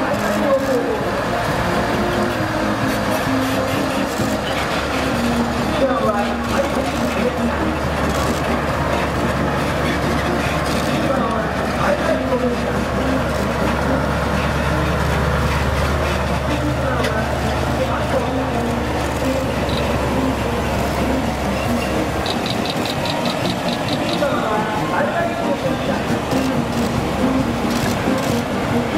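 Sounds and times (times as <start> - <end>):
heavy trucks driving past: 0.0 - 28.9
rapid high ticks: 22.2 - 24.4.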